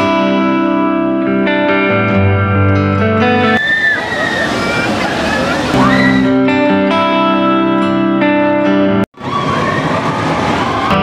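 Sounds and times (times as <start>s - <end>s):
guitar music: 0.0s - 3.6s, 5.4s - 9.1s
water splashing and sloshing: 3.6s - 6.3s
people's voices: 3.6s - 6.4s.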